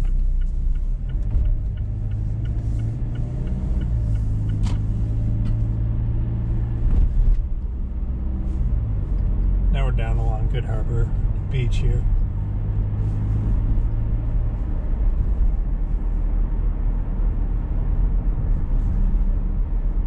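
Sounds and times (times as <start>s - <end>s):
light even ticking: 0.0s - 4.9s
car engine accelerating: 0.0s - 20.0s.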